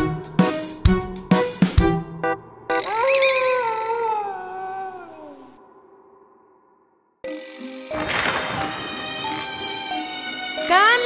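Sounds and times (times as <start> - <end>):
wolf howling: 2.7 - 6.0.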